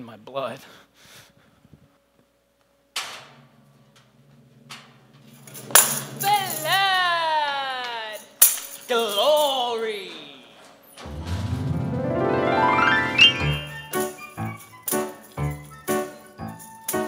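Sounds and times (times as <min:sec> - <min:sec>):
sharp crash: 0:11.0 - 0:14.2
low held note: 0:11.1 - 0:14.0
sharp hit: 0:11.1 - 0:14.0
wavering high falling tone: 0:11.1 - 0:14.7.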